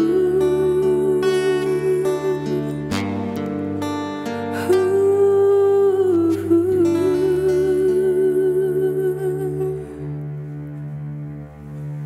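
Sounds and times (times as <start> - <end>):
soft sustained backing music: 0.0 - 12.0.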